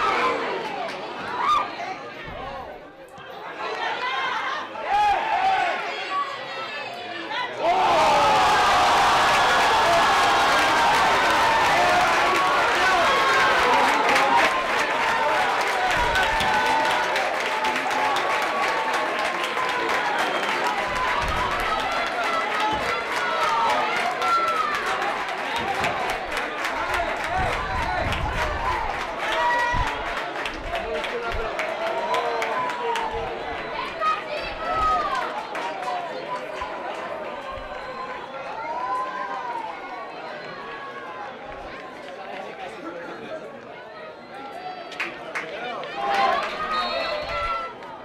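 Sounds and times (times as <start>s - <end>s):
crowd shouting: 0.0s - 2.6s, 3.4s - 41.8s.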